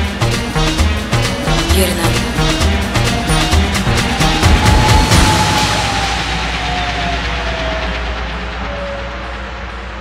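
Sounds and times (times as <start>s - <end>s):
low bass hum: 0.0s - 8.6s
tone sliding downward: 1.1s - 9.0s.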